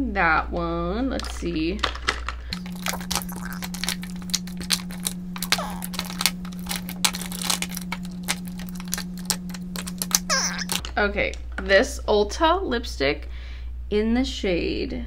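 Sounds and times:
lipstick tubes clattering: 1.2 - 10.9.

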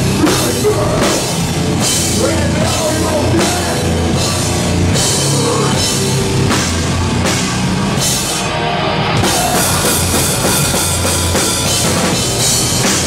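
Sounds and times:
heavy rock band playing: 0.0 - 13.0.

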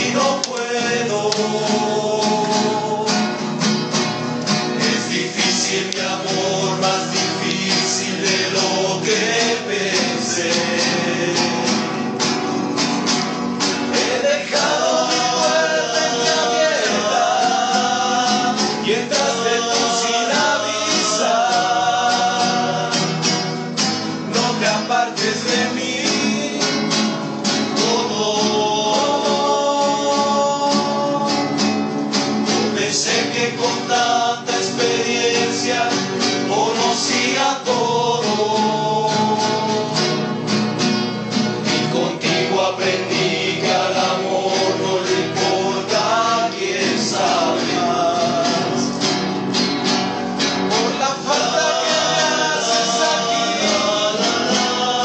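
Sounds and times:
men singing in harmony: 0.0 - 3.8, 4.6 - 12.5, 13.6 - 40.6, 41.7 - 49.4, 50.3 - 55.0
acoustic guitars strumming: 0.0 - 55.0.

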